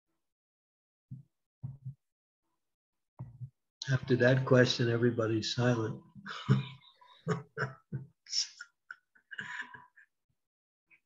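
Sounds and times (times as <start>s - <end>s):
man chuckling softly: 6.3s - 8.7s, 9.3s - 10.0s.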